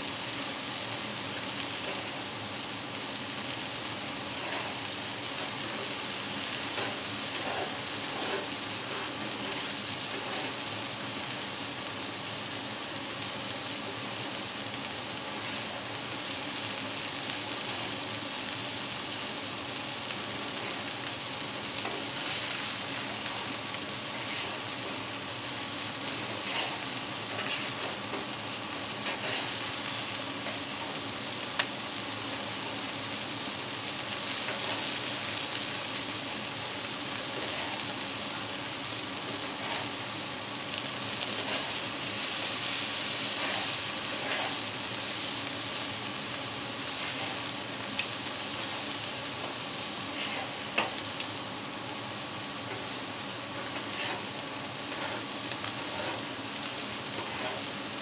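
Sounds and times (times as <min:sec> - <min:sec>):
food sizzling on griddle: 0:00.0 - 0:58.0.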